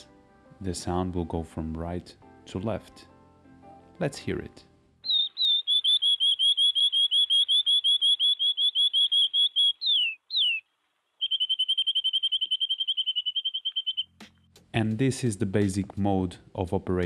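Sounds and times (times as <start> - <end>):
canary singing trills: 5.0 - 14.2.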